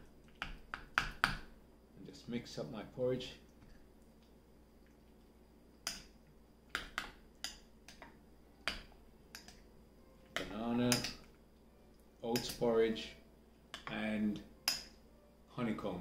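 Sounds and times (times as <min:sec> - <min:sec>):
metal spoon clinking against bowl: 0:10.4 - 0:11.2, 0:14.6 - 0:15.0.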